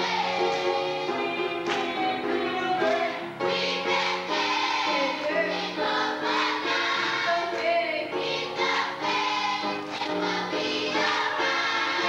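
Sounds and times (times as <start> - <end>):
children's choir singing gospel: 0.0 - 12.0.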